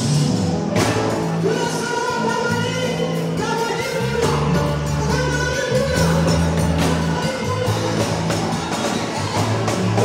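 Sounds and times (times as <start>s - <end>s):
drum kit: 0.0s - 10.0s.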